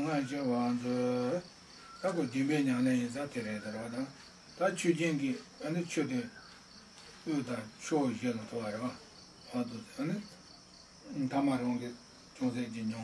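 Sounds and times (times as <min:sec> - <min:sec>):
man speaking: 0:00.0 - 0:06.4, 0:07.2 - 0:10.3, 0:11.1 - 0:13.0.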